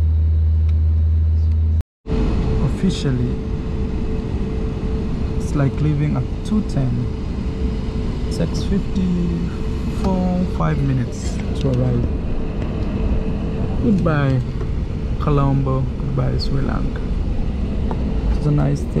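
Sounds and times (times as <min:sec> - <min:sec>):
airliner cabin rumble: 0:00.0 - 0:19.0
faint steady hum: 0:01.4 - 0:19.0
people talking: 0:02.6 - 0:03.4, 0:05.4 - 0:07.1, 0:08.3 - 0:12.1, 0:13.8 - 0:14.5, 0:15.2 - 0:17.0, 0:18.3 - 0:19.0.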